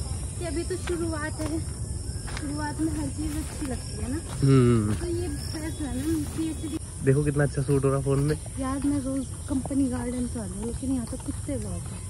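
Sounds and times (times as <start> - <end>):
insects hissing in grass: 0.0 - 12.0
people talking quietly: 0.0 - 12.0.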